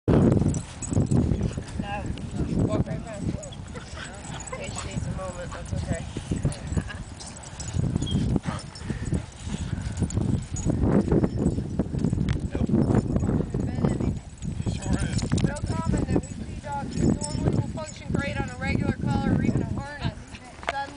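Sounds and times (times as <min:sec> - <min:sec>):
people's voices: 0:01.5 - 0:07.6, 0:13.4 - 0:20.9.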